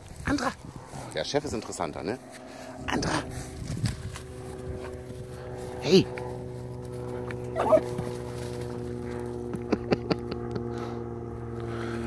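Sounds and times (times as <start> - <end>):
steady low hum: 0.0 - 12.0
dogs wrestling in play: 7.0 - 9.2
dog giving short wavering cry: 7.6 - 7.9.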